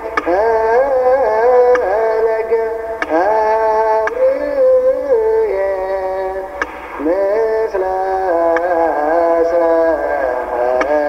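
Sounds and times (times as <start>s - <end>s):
person singing a hymn: 0.0s - 11.0s.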